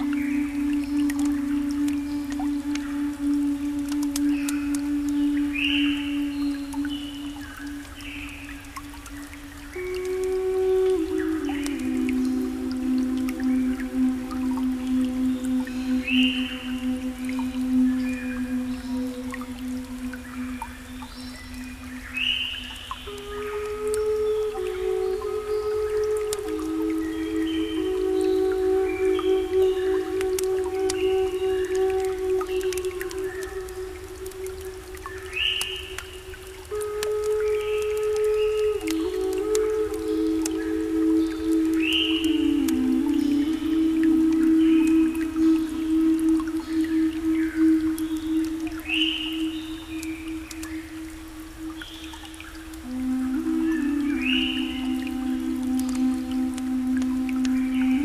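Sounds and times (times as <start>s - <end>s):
faint clicks: 0.0s - 58.0s
low held synth notes: 0.0s - 58.0s.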